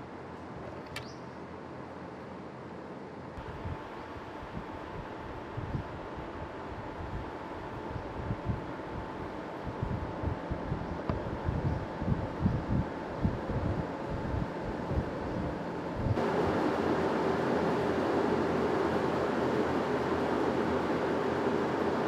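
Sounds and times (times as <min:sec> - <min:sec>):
ventilation fans humming: 0:00.0 - 0:22.0
loud steady whir: 0:03.4 - 0:22.0
wind buffeting microphone: 0:03.4 - 0:22.0.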